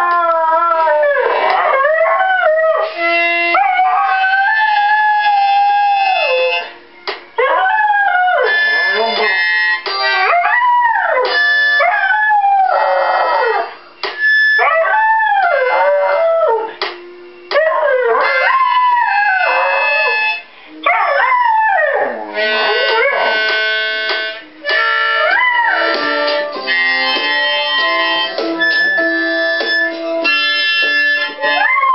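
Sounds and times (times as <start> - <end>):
dog howling: 0.0 - 6.7, 14.6 - 16.8, 17.5 - 23.4, 25.2 - 26.3, 31.4 - 31.9
music: 0.0 - 31.9.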